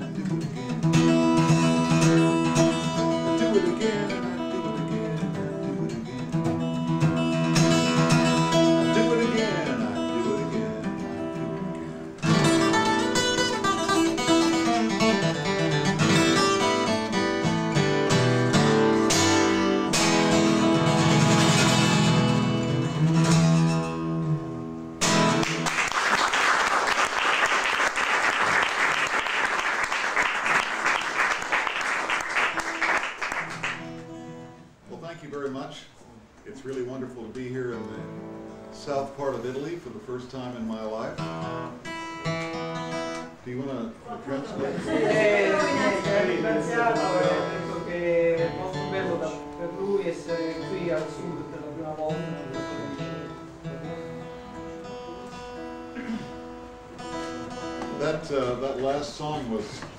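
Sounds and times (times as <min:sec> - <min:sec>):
acoustic guitar playing: 0:00.0 - 0:59.9
audience applause: 0:25.4 - 0:34.0.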